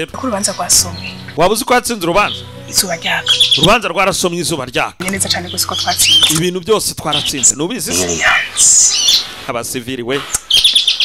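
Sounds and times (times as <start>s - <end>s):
bird chirping: 0.0s - 3.9s, 5.0s - 9.4s, 10.2s - 11.0s.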